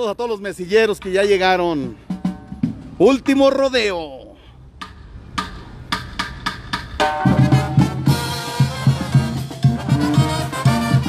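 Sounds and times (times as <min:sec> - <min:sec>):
drum strokes: 0:01.4 - 0:03.6, 0:04.8 - 0:11.0
bass drum: 0:01.9 - 0:03.3, 0:04.8 - 0:11.0
brass section playing: 0:07.2 - 0:11.0.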